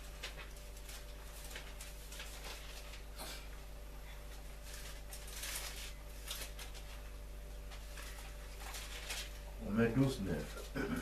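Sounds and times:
pages rustling: 0.0 - 3.4, 4.3 - 10.7
steady low hum: 0.0 - 11.0.

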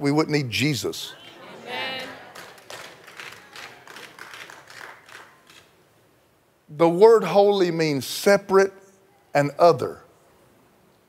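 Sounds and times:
people clapping in a hall: 1.2 - 5.9.

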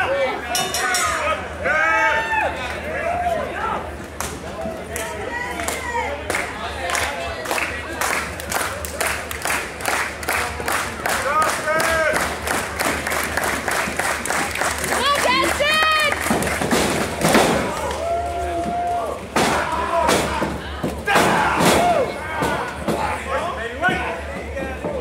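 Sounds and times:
crowd clapping in rhythm: 4.2 - 18.1
voices yelling: 17.6 - 24.3.

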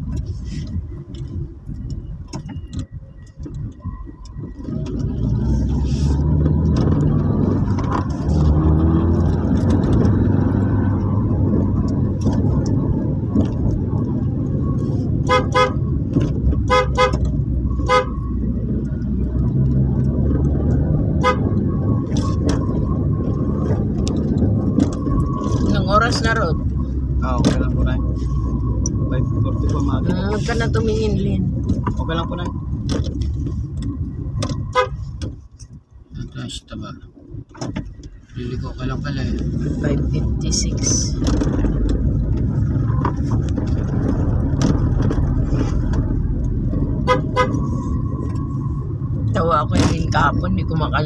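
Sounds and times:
car engine and road rumble: 0.0 - 51.0.

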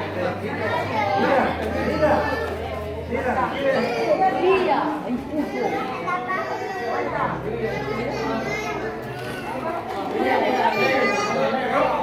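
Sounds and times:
crowd of adults and children talking: 0.0 - 12.0.

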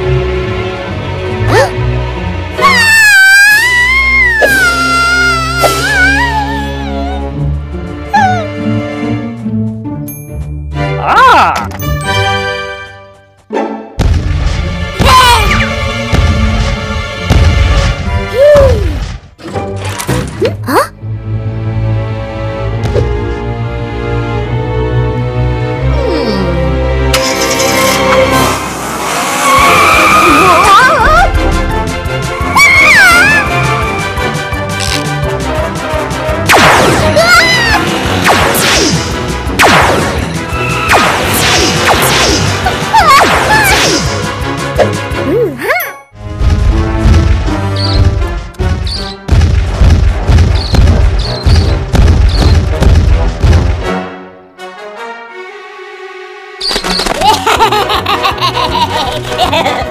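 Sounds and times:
background music: 0.0 - 59.9
baby crying: 3.6 - 7.3
squealing tone like skidding tires: 28.8 - 31.0
warbling squeal: 29.1 - 31.0.

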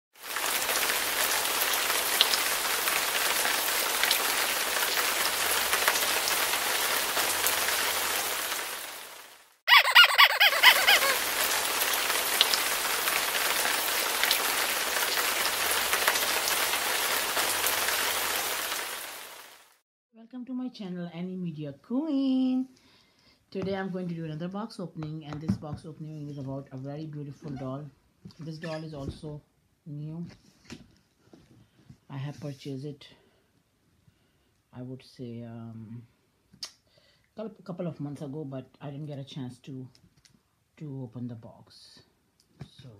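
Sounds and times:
steady rain-like hiss: 0.2 - 9.7, 10.6 - 19.8.

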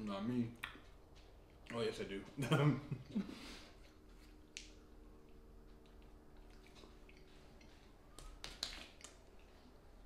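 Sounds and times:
quiet chewing mouth smacks: 4.3 - 9.6.

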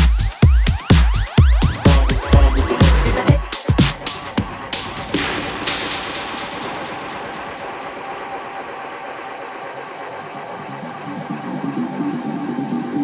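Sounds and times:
noisy synth wash: 0.4 - 13.0
pulsing synth line: 1.0 - 13.0.

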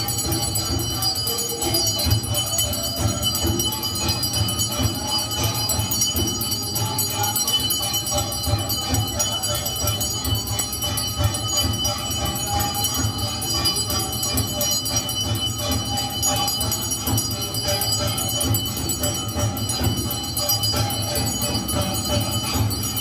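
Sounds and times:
bells and metal percussion clanging: 0.0 - 23.0.

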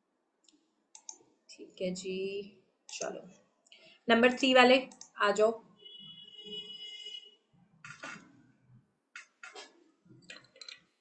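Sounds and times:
sharp clicks: 0.4 - 1.2.

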